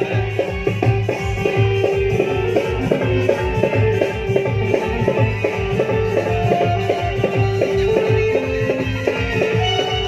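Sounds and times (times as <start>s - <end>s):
low drum beat: 0.0s - 9.0s
band playing instrumental: 0.0s - 10.0s
keyboard melody: 0.0s - 10.0s.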